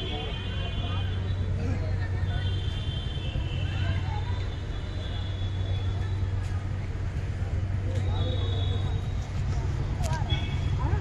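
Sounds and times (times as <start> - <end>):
distant voices: 0.0 - 11.0
hum of road traffic: 0.0 - 11.0.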